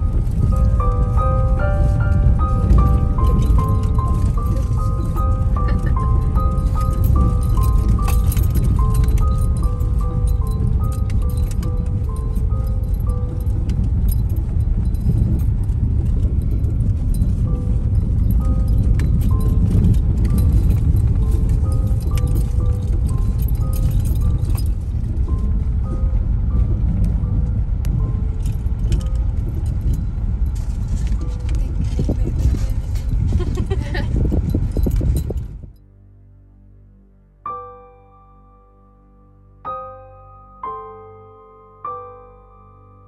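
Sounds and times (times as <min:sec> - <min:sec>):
car interior rattles and clicks: 0:00.0 - 0:35.8
tyres rumbling on cobblestones: 0:00.0 - 0:35.8
rattling clicks: 0:02.7 - 0:17.6.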